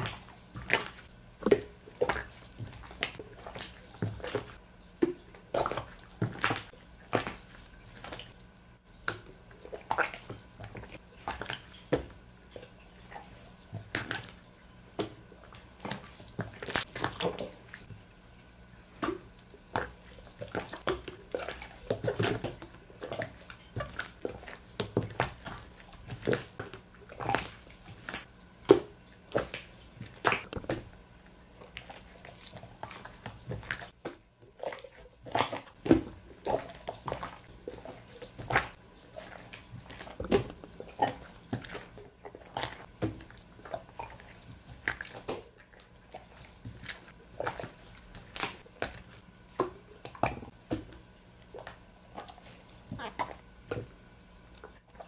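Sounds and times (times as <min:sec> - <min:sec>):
slime squelching and popping: 0:18.9 - 0:31.0, 0:31.6 - 0:55.0.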